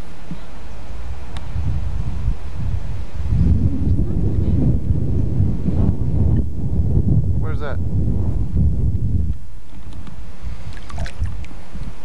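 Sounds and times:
wind buffeting microphone: 0:00.3 - 0:12.0.

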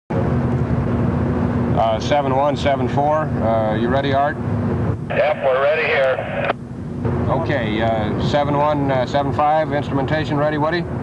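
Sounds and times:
loud low droning hum: 0:00.1 - 0:11.0
man saying uh: 0:05.1 - 0:06.5.

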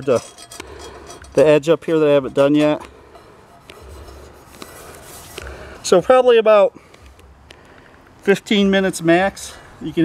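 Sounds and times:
gloved hands rubbing iron skillet: 0:02.6 - 0:05.9.

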